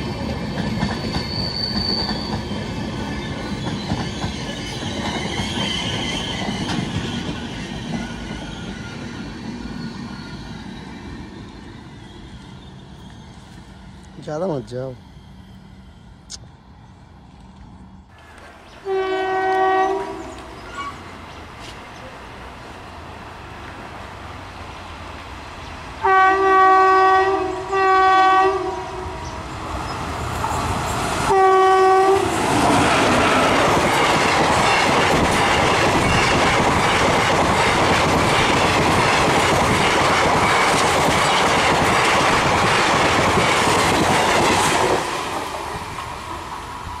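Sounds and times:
train wheels clattering over rail joints: 0:00.0 - 0:10.4, 0:32.4 - 0:46.1
locomotive air horn blasts: 0:18.8 - 0:20.5, 0:26.0 - 0:29.3, 0:31.3 - 0:32.3.

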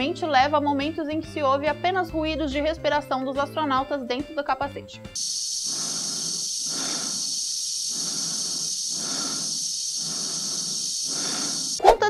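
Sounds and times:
breathing inside a helmet: 0:05.2 - 0:11.8
steady high hiss: 0:05.2 - 0:11.8.

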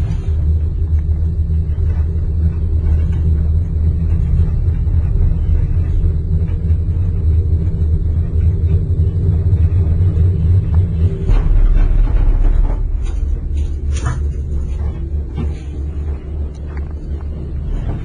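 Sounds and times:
faint steady hum: 0:00.0 - 0:18.0
gondola cabin rumble: 0:00.0 - 0:18.0.

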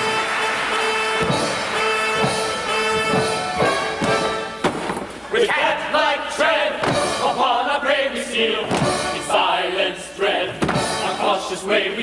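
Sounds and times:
theatre orchestra playing: 0:00.0 - 0:05.2
feet stamping on wooden stage: 0:01.1 - 0:05.1, 0:08.7 - 0:09.0
men's chorus singing: 0:05.3 - 0:12.0.

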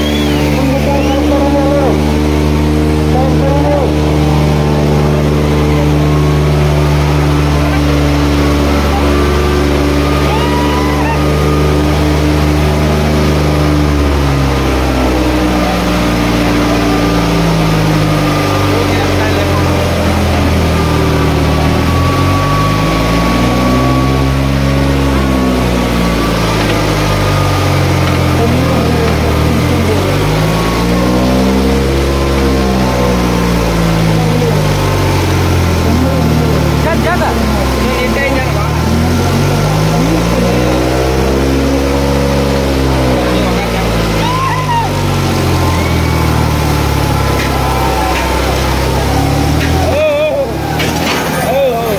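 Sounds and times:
crowd voices: 0:00.0 - 0:51.9
tractor diesel engines revving: 0:00.0 - 0:51.9.

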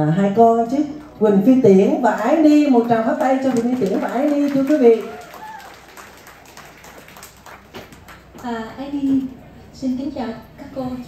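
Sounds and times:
light applause: 0:02.1 - 0:09.4.

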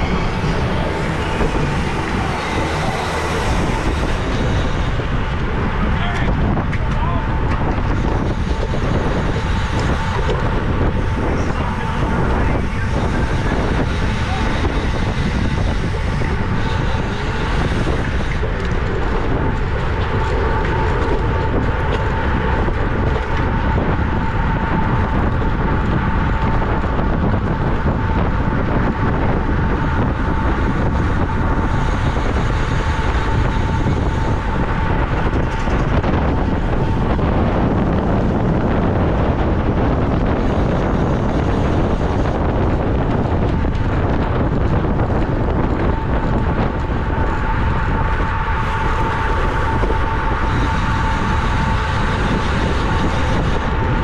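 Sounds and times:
road and tyre noise: 0:00.0 - 0:54.0
wind rushing over microphone: 0:00.0 - 0:54.0.

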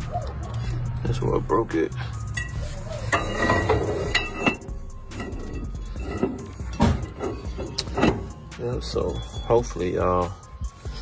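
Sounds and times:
steel shaft knocking and clinking: 0:02.4 - 0:08.5.

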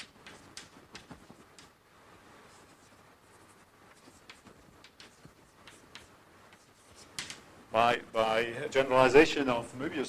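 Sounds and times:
chalk taps: 0:00.0 - 0:01.8, 0:02.5 - 0:07.4
chalk scratching on blackboard: 0:02.4 - 0:07.3.

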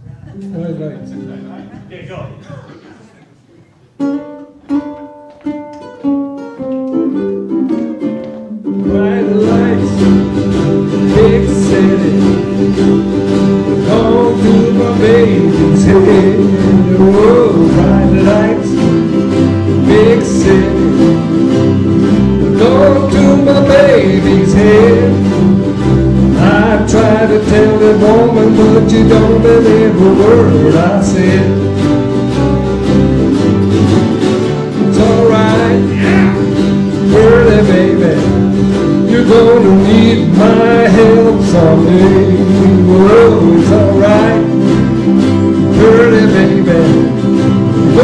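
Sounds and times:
ukulele band playing rock song: 0:00.0 - 0:03.1, 0:03.7 - 0:48.0
ukulele chords strummed: 0:03.9 - 0:48.0
low bass part: 0:08.9 - 0:48.0.

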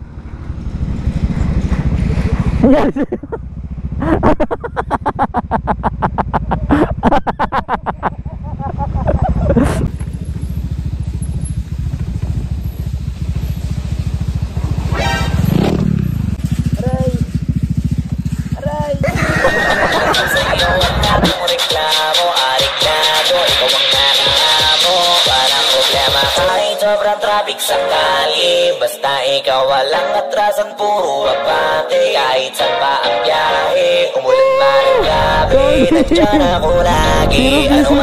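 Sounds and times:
motorcycle engine running: 0:00.0 - 0:26.6, 0:34.8 - 0:38.0.

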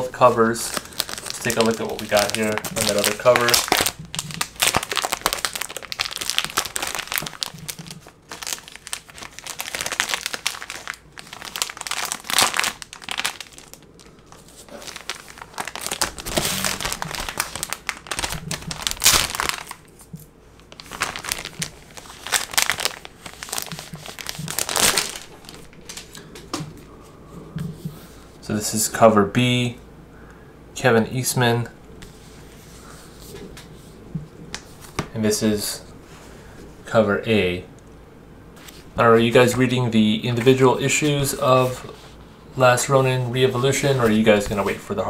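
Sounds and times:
plastic bags crinkling: 0:00.2 - 0:26.2.

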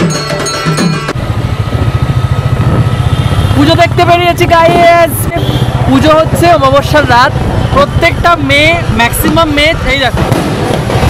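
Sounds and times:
motorcycle engine rumbling: 0:00.0 - 0:11.0.

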